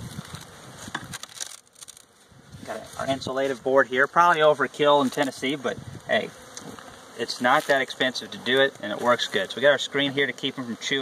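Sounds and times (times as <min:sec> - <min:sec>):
wooden cover scraping and cracking: 0:00.2 - 0:02.1.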